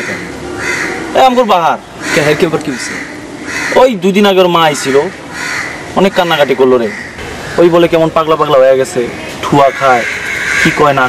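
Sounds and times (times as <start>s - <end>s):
crows cawing: 0.0s - 8.1s, 8.9s - 11.0s
man speaking: 7.6s - 11.0s.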